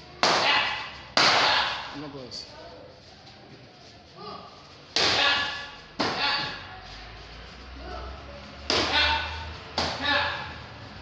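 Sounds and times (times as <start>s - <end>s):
kicks slapping a kick paddle: 5.0s - 6.6s, 8.7s - 9.0s.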